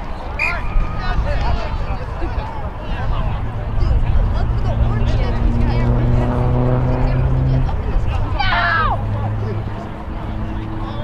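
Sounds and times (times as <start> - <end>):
steady engine hum: 1.2 - 11.0
people shouting: 8.3 - 9.1.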